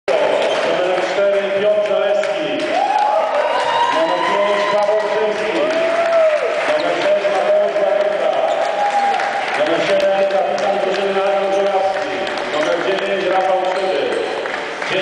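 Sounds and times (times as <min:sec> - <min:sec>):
crowd applause: 0:00.1 - 0:15.0.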